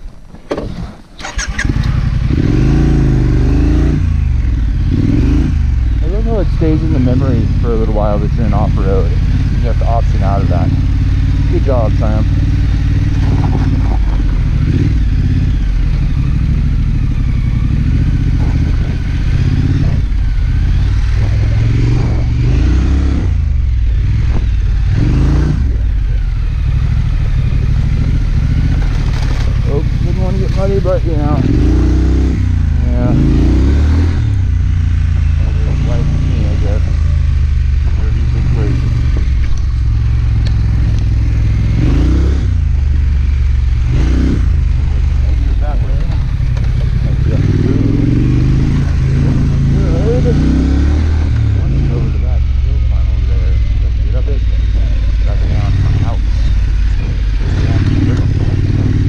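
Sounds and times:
motorcycle engine running: 0.0 - 59.0
low rumble on microphone: 1.9 - 59.0.

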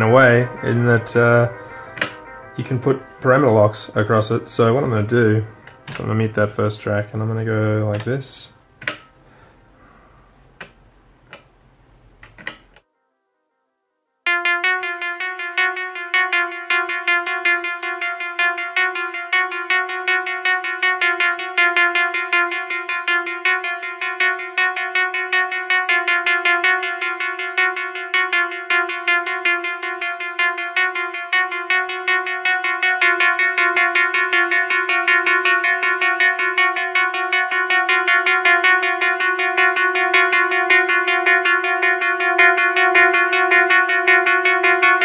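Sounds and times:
synthesizer repeating one note: 0.0 - 10.0, 14.3 - 45.0.

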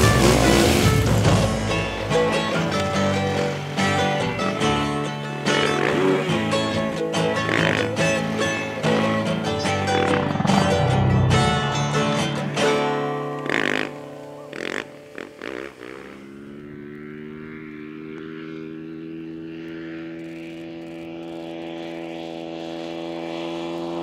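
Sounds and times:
music with loud hits: 0.0 - 2.3, 10.0 - 12.7
dirt bike engine droning: 0.0 - 24.0.

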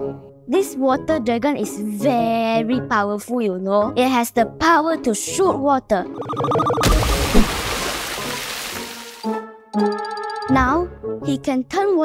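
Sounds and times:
music: 0.0 - 7.5, 8.1 - 12.0
water spraying and splashing: 6.8 - 9.3.

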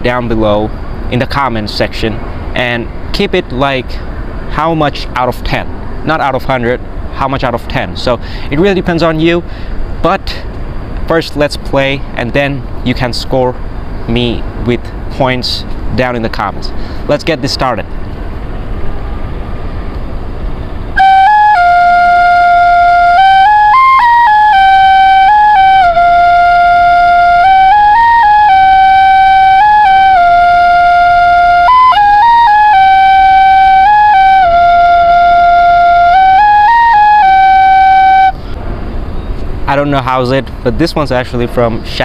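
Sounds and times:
low background rumble: 0.0 - 42.0
bamboo flute melody: 20.9 - 38.6.

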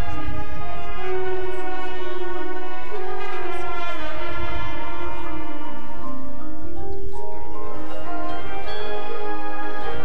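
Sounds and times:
marching band brass chords: 0.0 - 6.4, 7.7 - 10.0.

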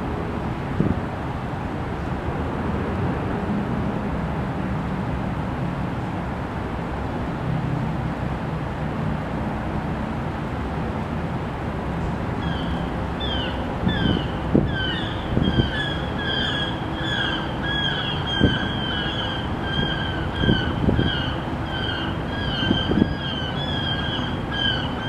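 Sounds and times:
bird calling: 12.4 - 25.0.

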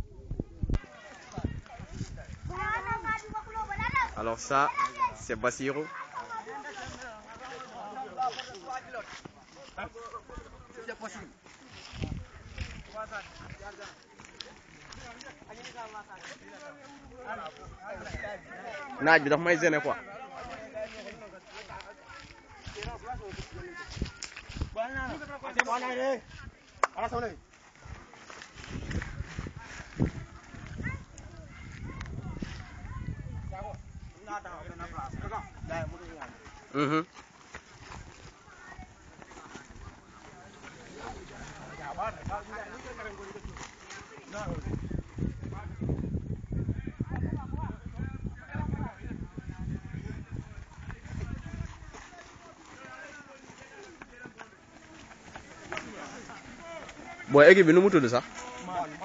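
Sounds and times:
footsteps jogging on dirt: 0.8 - 59.0.

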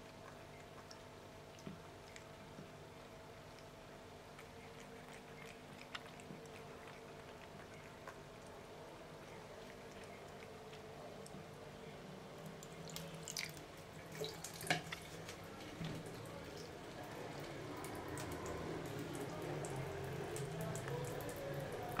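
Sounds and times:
water drips and splashes: 12.4 - 22.0.

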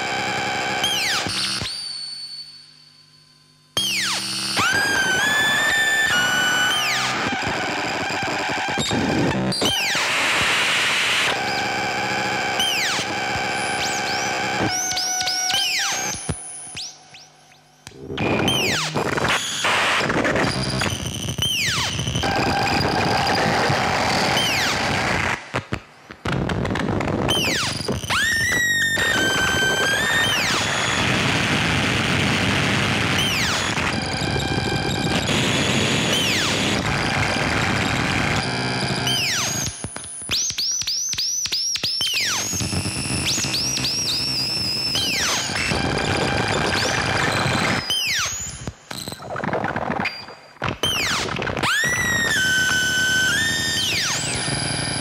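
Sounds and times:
harsh electronic synthesizer noise: 0.0 - 2.1, 3.8 - 40.4, 42.0 - 55.0
whistle-like electronic chirps: 0.8 - 3.1, 3.8 - 7.2, 12.6 - 19.6, 20.5 - 24.8, 27.3 - 31.1, 38.8 - 49.2, 50.0 - 55.0.

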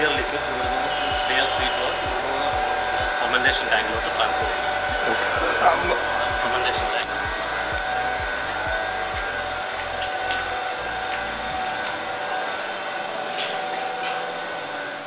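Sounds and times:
low pulsing: 0.0 - 12.2
machinery whirring hum: 0.0 - 15.0.

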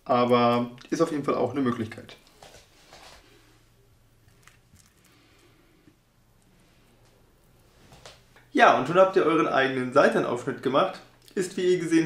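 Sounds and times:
soft handling sounds: 1.7 - 8.4.

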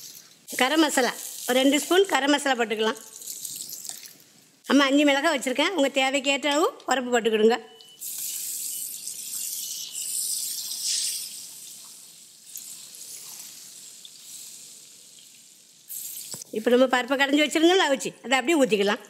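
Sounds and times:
oil sizzling in a pot: 0.0 - 4.6, 7.8 - 16.6.

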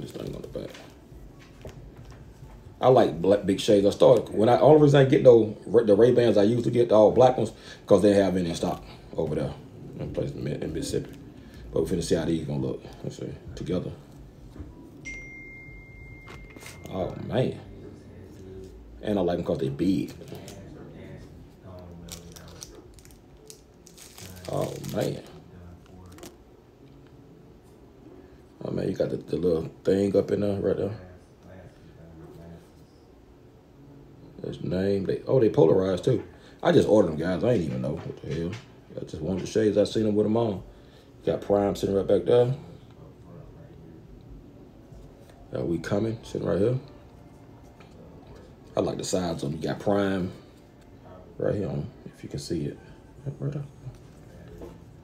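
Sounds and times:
faint high-pitched tone: 14.9 - 18.6.

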